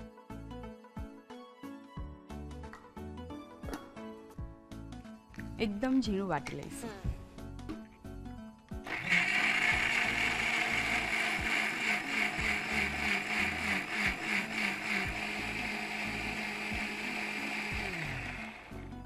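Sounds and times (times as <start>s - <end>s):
electric mixer grinder blending: 8.9s - 19.0s.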